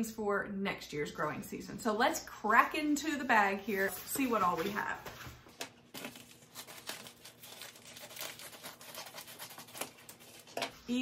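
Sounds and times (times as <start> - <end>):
paper bag tearing and crinkling: 5.9 - 10.6.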